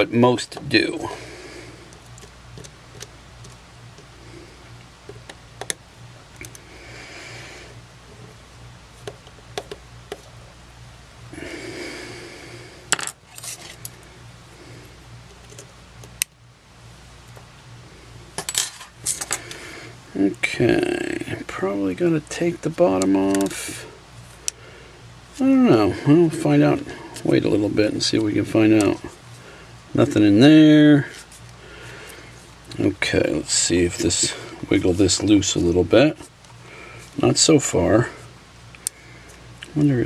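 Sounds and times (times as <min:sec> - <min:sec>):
faint steady hum: 0:00.0 - 0:40.0
scraping rustles: 0:13.2 - 0:14.0.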